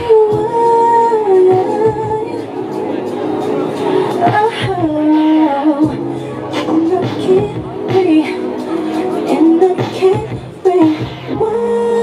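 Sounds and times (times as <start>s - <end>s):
backing track with low beat: 0.0s - 12.0s
woman singing into a microphone: 0.0s - 12.0s.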